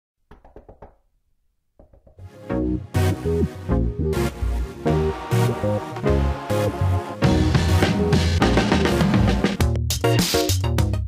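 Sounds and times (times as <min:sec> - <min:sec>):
knocks: 0:00.3 - 0:01.0, 0:01.8 - 0:02.2.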